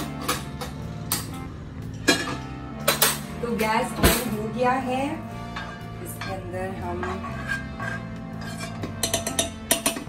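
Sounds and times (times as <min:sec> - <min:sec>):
background music with low notes: 0:00.0 - 0:10.0
metal spoon scraping frying pan: 0:05.5 - 0:10.0.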